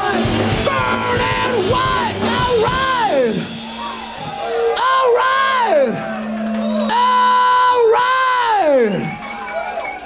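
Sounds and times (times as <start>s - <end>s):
live rock song: 0.0s - 9.6s
audience cheering: 0.0s - 10.0s.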